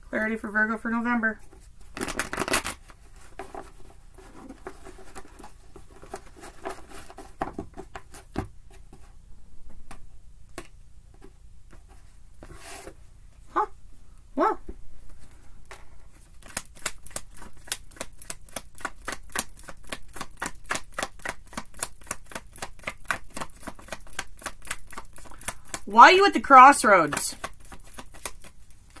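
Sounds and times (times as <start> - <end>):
cards being shuffled: 1.4 - 8.4, 15.7 - 29.0.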